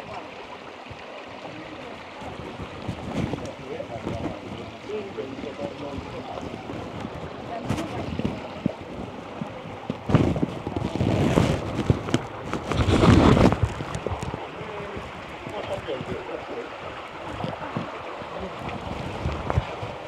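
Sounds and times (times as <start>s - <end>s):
stream running over rock: 0.0s - 20.0s
wind rumbling on microphone: 0.0s - 20.0s
footsteps on wet stone: 6.0s - 14.4s.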